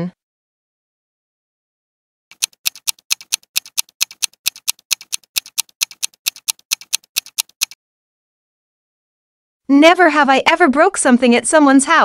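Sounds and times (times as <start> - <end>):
rapid clock-like ticks: 2.3 - 7.8.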